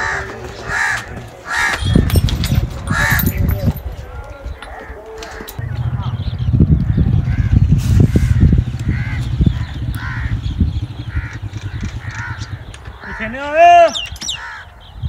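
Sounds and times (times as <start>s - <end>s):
crows cawing: 0.0s - 2.1s, 2.9s - 3.3s, 7.2s - 14.9s
heavy low rumble: 5.4s - 13.3s
drawn-out call rising and falling: 5.4s - 14.8s.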